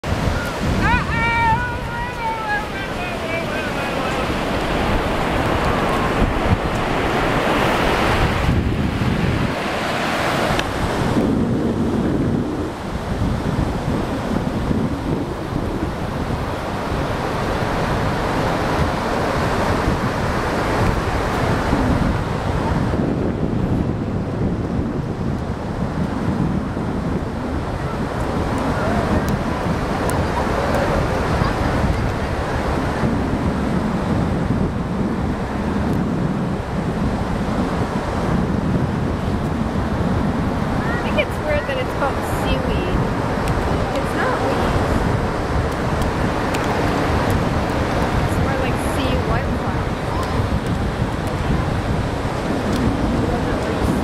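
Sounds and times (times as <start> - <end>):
surf washing on sand: 0.0 - 54.0
wind buffeting microphone: 0.0 - 54.0.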